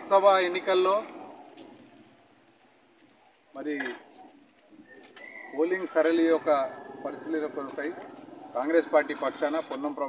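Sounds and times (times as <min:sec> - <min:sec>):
man speaking into microphone: 0:05.6 - 0:10.0.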